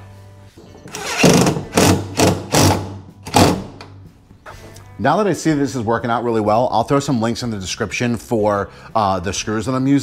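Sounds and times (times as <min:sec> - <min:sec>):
cordless drill driving screws: 0:00.9 - 0:03.6.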